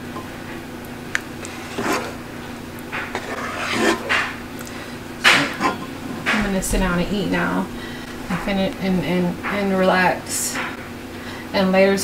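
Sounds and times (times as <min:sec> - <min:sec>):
spoon stirring thick food in pot: 0:02.8 - 0:04.4.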